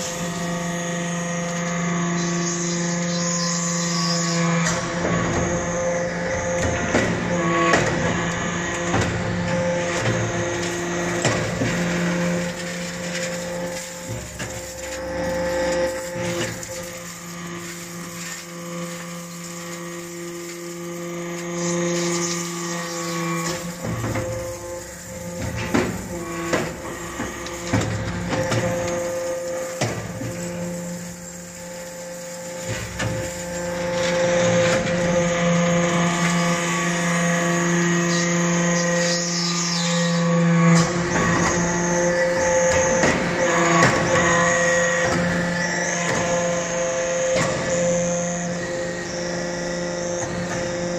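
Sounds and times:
hydraulic press humming: 0.0 - 50.9.

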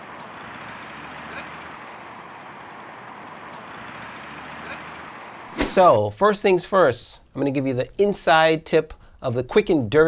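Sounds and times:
distant traffic noise: 0.0 - 6.0.

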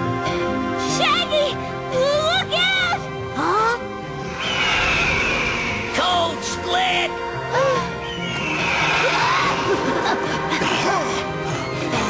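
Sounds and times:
cartoon background music: 0.0 - 12.0
long hissing with falling whistle: 4.3 - 6.0.

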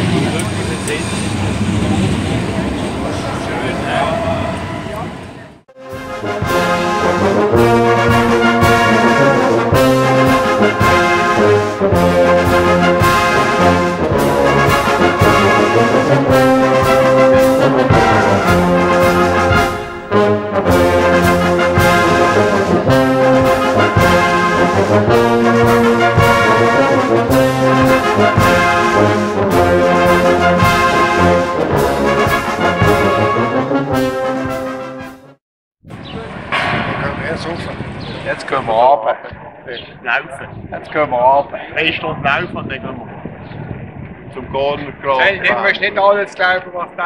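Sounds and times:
brass music with steady beat: 5.7 - 35.4.

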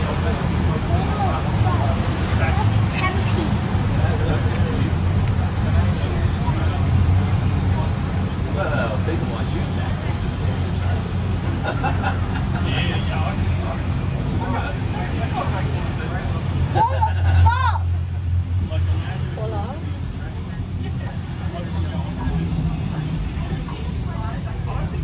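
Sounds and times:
passengers talking: 0.0 - 25.0
train carriage rumbling on track: 0.0 - 25.0.

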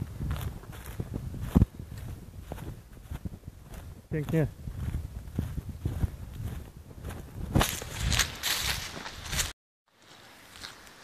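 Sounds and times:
running footsteps on dirt: 0.0 - 10.8.

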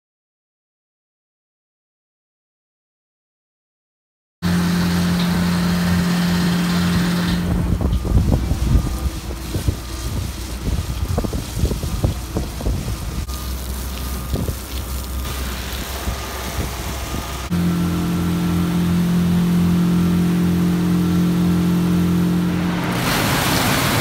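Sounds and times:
industrial machinery humming: 4.4 - 24.0
low plant drone: 4.4 - 24.0
wind buffeting microphone: 6.9 - 13.3, 14.1 - 17.5.

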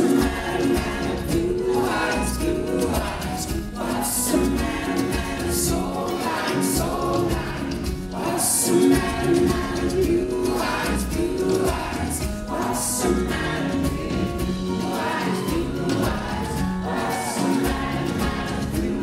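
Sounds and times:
live band with singing: 0.0 - 19.0.

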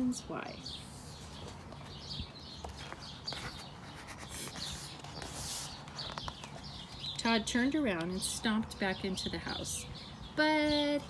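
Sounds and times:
faint birds chirping: 0.0 - 11.0
book page turning: 2.6 - 7.0.

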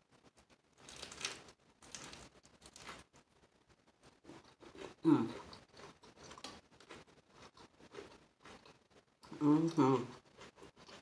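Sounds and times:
soft chewing with mouth clicks: 0.4 - 3.2, 4.0 - 11.0.

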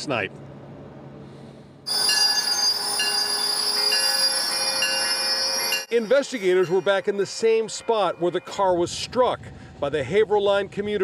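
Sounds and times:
train wheels squealing on rails: 1.9 - 8.9.

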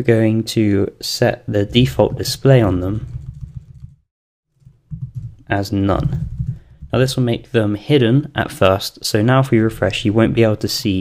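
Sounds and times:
keyboard typing: 1.7 - 4.0, 4.6 - 7.1.

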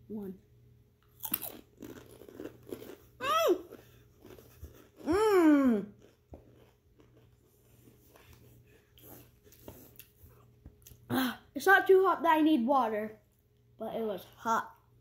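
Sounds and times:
crunching and chewing chips: 1.0 - 11.1.

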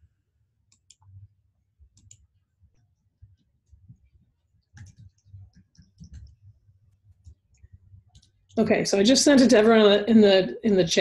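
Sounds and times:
computer keyboard typing: 1.9 - 2.3, 3.6 - 6.4.

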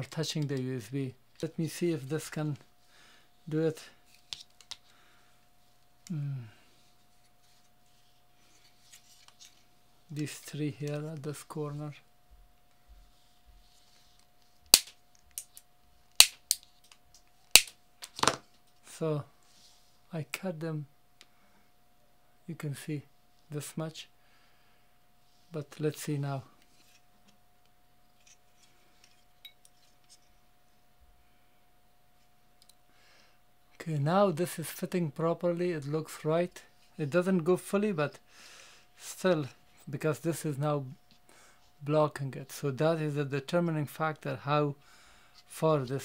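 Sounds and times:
faint steady whine: 0.0 - 46.0
faint clicks of handled tools: 32.6 - 32.8.

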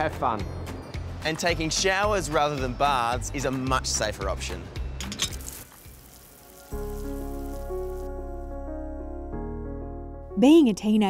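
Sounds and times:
background music with held notes: 0.0 - 5.5, 6.3 - 11.0
shower spraying water: 5.4 - 8.1.

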